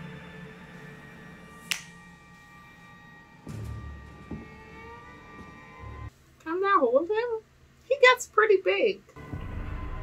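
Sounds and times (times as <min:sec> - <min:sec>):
eerie drone music: 0:00.0 - 0:06.1, 0:09.2 - 0:10.0.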